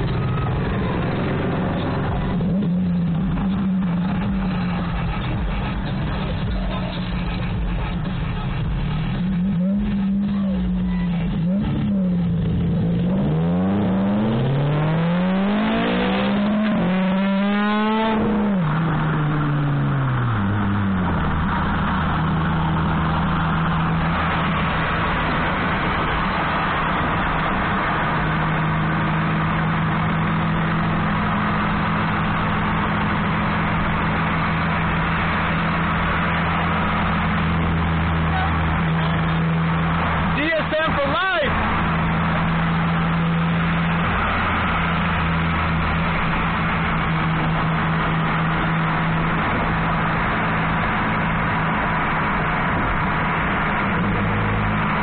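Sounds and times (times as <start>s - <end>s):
car engine revving and accelerating: 0.0s - 55.0s
road noise: 0.0s - 55.0s.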